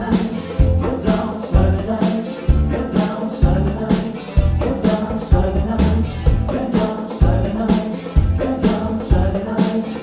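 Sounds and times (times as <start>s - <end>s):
punchy bass line: 0.0s - 9.6s
funk band playing: 0.0s - 10.0s
men singing: 0.0s - 10.0s.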